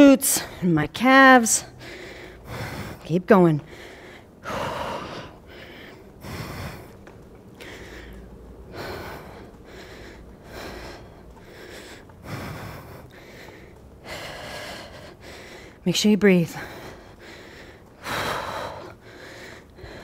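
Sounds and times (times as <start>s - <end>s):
woman breathing hard: 1.7s - 3.0s, 3.6s - 15.8s, 16.5s - 20.0s.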